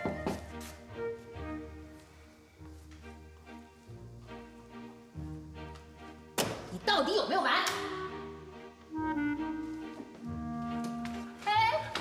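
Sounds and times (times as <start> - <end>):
soft background music: 0.0 - 12.0
woman speaking: 11.4 - 12.0.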